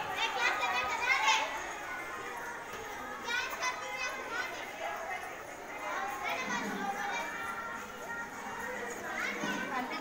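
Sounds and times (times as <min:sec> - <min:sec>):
high-pitched girls' voices: 0:00.0 - 0:10.0
music: 0:00.0 - 0:10.0.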